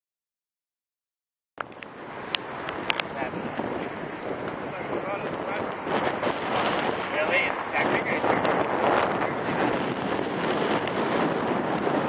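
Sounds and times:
wind buffeting microphone: 1.6s - 12.0s.

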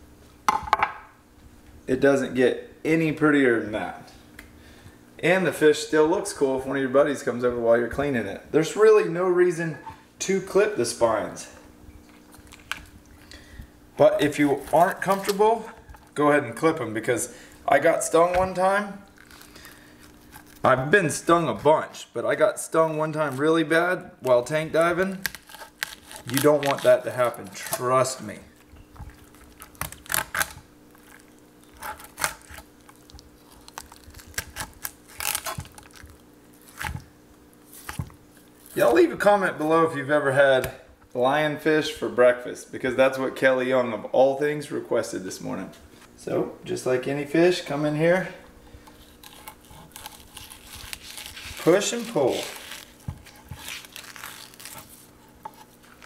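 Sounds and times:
faint steady hum: 0.0s - 56.0s
knife scraping fish skin: 25.2s - 27.8s, 48.9s - 56.0s.

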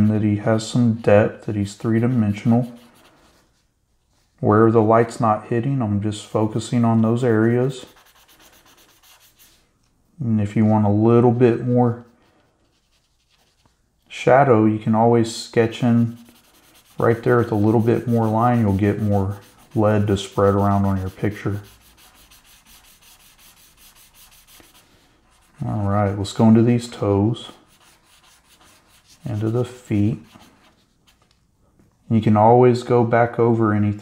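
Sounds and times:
blending stump rubbing on paper: 0.6s - 3.6s, 7.2s - 9.6s, 11.5s - 14.1s, 15.6s - 25.9s, 27.4s - 31.2s.

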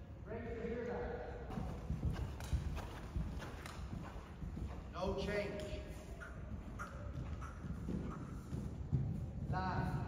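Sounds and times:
horse hoofbeats on sand: 1.5s - 10.0s.

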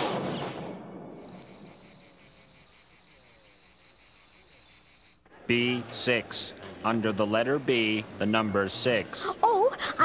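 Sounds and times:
crickets chirping: 1.1s - 5.3s.

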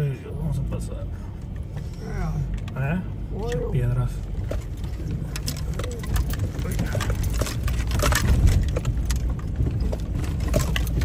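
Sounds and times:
car engine and tyres rumbling: 0.0s - 11.0s
stones crunching under tyres: 4.2s - 11.0s.

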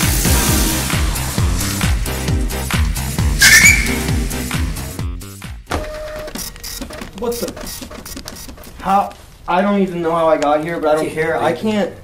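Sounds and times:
funk music with sliding bass: 0.0s - 5.4s
loud short squeal: 3.4s - 4.1s.

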